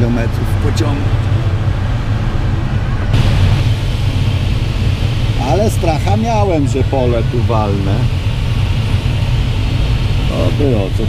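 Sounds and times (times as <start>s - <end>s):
airflow rushing around cockpit: 0.0s - 11.0s
bright hiss: 3.2s - 11.0s.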